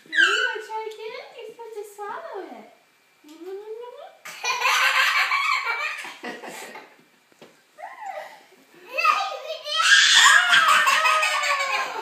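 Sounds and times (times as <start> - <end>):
loud laughter: 4.4 - 6.9, 10.2 - 12.0.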